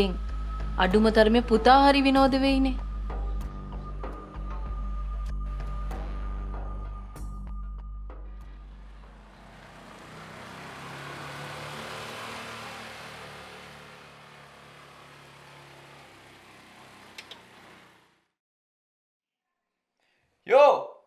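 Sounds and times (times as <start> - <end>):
car passing by: 8.3 - 18.3.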